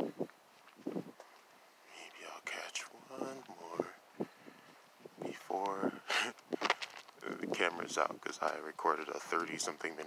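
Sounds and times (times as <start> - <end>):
person whispering: 1.9 - 3.9.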